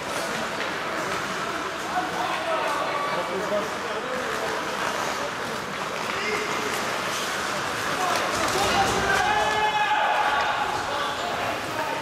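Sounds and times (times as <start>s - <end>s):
hall hubbub: 0.0s - 12.0s.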